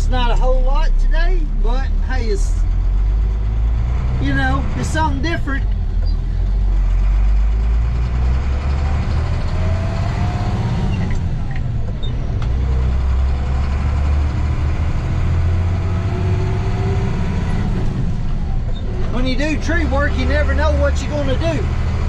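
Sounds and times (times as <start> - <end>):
truck engine revving: 0.0 - 22.0.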